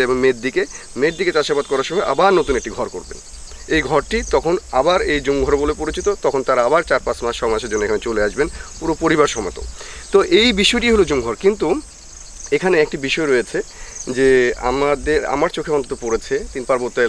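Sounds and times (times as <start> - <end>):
man talking: 0.0 - 11.9, 12.5 - 17.0
insects droning: 0.0 - 17.0.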